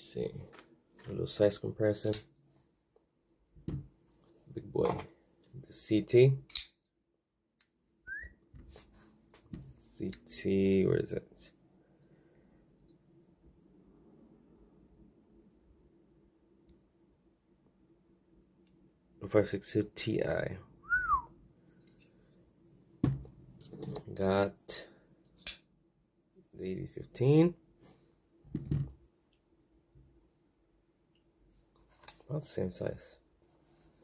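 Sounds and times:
sharp click: 6.5s - 6.8s, 25.4s - 25.6s
short whistled note: 8.1s - 8.3s, 20.8s - 21.3s.

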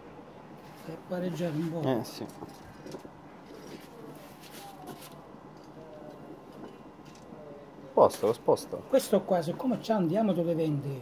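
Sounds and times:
wood pellets burning with crackle: 0.6s - 11.0s.

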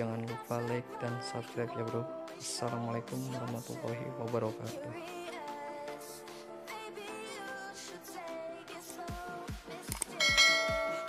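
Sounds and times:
electronic dance music: 10.0s - 11.0s
bright bell chime: 10.2s - 11.0s.

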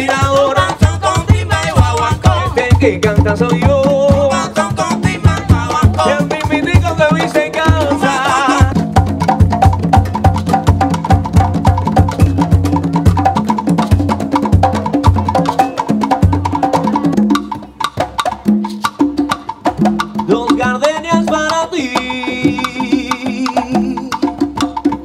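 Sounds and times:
conga drums played by hand: 0.0s - 25.0s.

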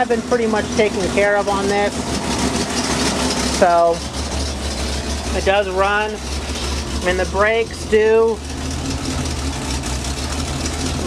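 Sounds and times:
pickup engine idling: 0.0s - 11.0s.

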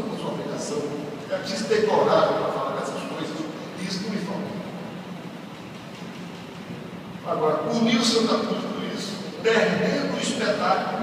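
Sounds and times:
steady hiss of hall room tone: 0.0s - 11.0s.

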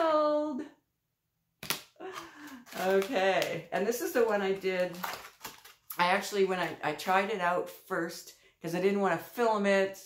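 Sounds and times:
woman speaking: 0.0s - 0.8s, 2.0s - 5.2s, 5.9s - 10.0s
plastic bag handling noise: 2.4s - 6.1s.

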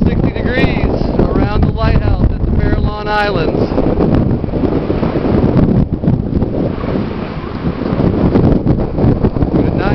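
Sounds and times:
surf washing over rocks: 0.0s - 9.9s
wind buffeting microphone: 0.0s - 9.9s.

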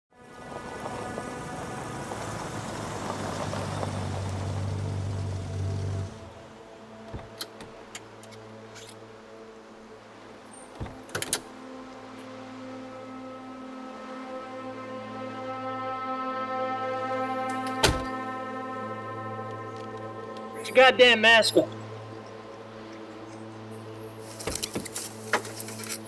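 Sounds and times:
droning film score: 0.1s - 26.0s
car engine running: 0.8s - 6.4s
car doors clicking and knocking: 7.1s - 7.7s, 10.8s - 11.4s.

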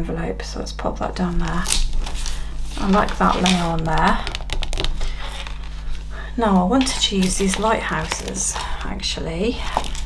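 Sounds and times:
paper crinkling and rustling: 1.4s - 8.9s, 9.5s - 10.0s.

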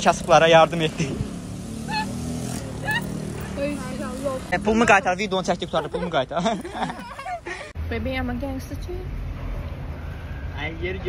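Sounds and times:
traffic hum: 0.0s - 11.0s.

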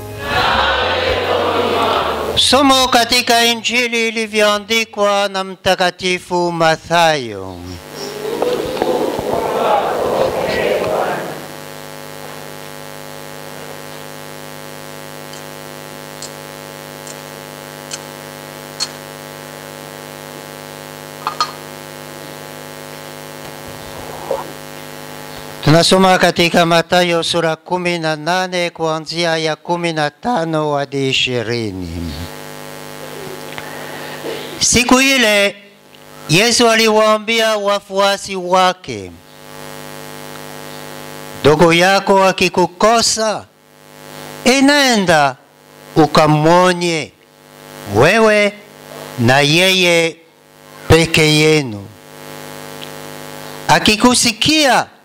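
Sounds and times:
electrical buzz-hum: 0.0s - 55.0s
voice trailing off: 0.1s - 2.5s, 7.9s - 11.6s.

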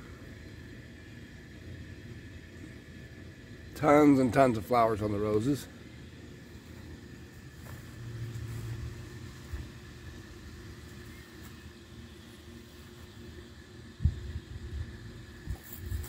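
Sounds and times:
faint low rumble: 6.6s - 16.0s.

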